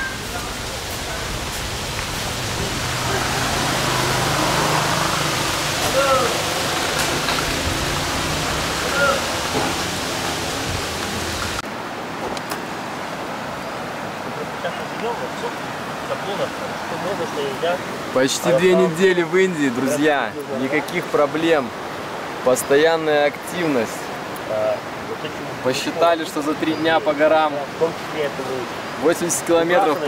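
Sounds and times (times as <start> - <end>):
outdoor rushing noise: 0.0 - 12.3.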